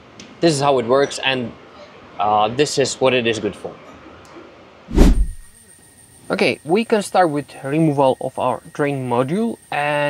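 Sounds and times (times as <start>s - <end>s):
heavy low thump: 4.9s - 5.5s.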